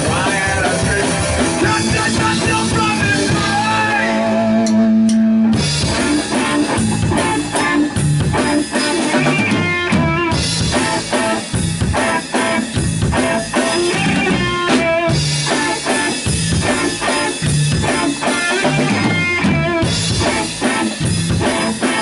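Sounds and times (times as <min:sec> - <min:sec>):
driving drum beat: 0:00.0 - 0:22.0
electric guitar: 0:00.0 - 0:22.0
upright bass: 0:00.0 - 0:22.0.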